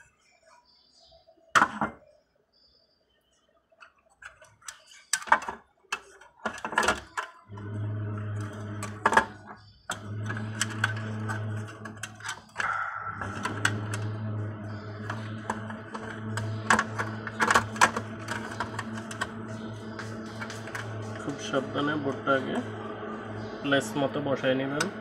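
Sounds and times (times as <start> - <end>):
clicks and knocks of handled parts: 3.8 - 7.4
steady low hum: 7.5 - 25.0.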